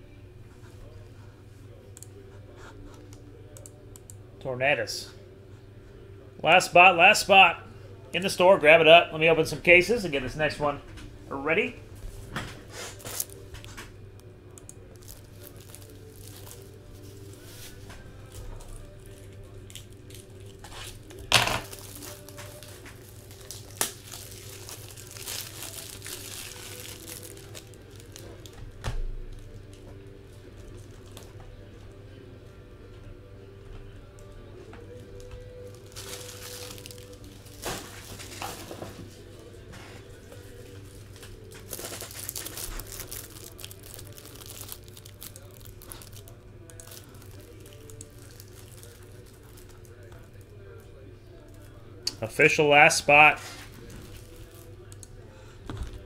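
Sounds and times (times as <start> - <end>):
quiet background music: 0.0 - 56.0
packaging tearing and crinkling: 12.9 - 13.4, 14.9 - 28.6, 35.6 - 38.8, 41.2 - 50.4, 53.6 - 55.0.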